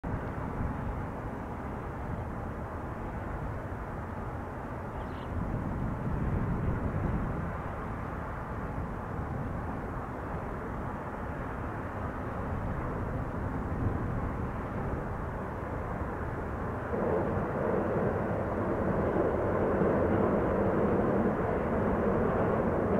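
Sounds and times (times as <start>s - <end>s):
low outdoor background rumble: 0.0s - 22.9s.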